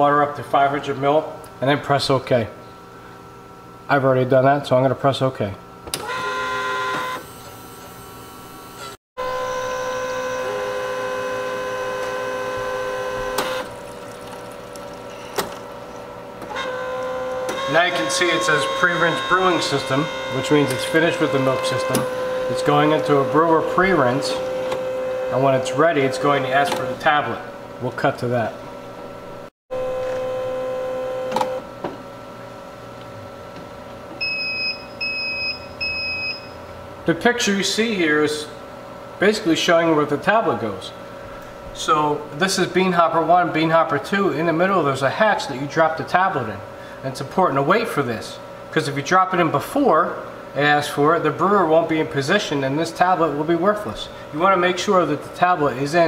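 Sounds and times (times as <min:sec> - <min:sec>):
coffee machine humming: 0:05.8 - 0:35.1.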